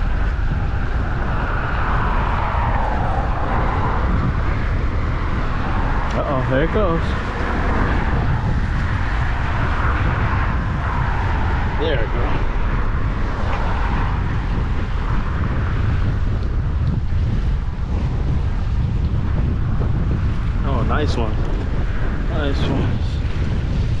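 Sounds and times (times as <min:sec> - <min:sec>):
road traffic: 0:00.0 - 0:24.0
wind on microphone: 0:00.0 - 0:24.0.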